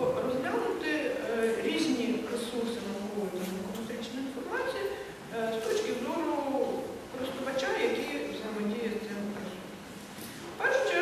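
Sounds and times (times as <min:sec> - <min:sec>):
woman speaking: 0:00.0 - 0:09.8, 0:10.5 - 0:11.0.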